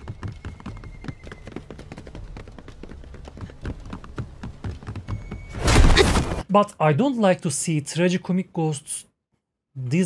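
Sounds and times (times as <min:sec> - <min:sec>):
people running footfalls: 0:00.0 - 0:06.2.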